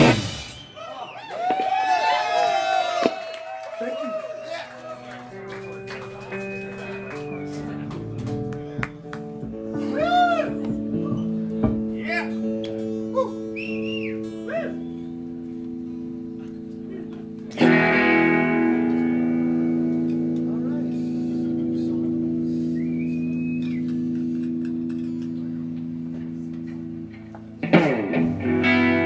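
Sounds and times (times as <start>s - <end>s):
thin high whistle: 0.4s - 1.2s, 13.5s - 15.3s, 22.6s - 24.2s
electric guitars sustained notes: 5.0s - 29.0s.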